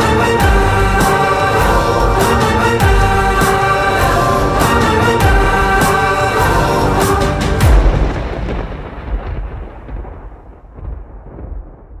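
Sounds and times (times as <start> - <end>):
low musical hit: 0.0 - 10.2
deep rumbling tail: 0.0 - 12.0.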